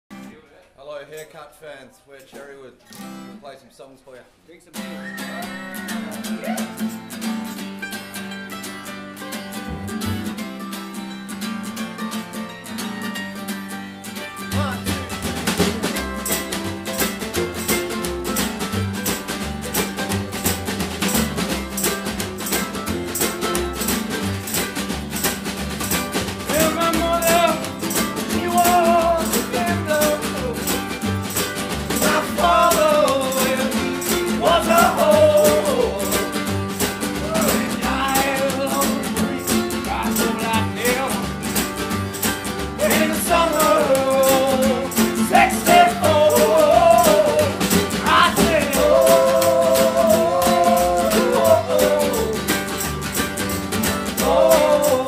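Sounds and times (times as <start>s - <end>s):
strummed acoustic strings: 4.8s - 55.0s
man singing: 26.5s - 30.9s, 31.9s - 41.4s, 42.8s - 52.6s, 54.1s - 55.0s.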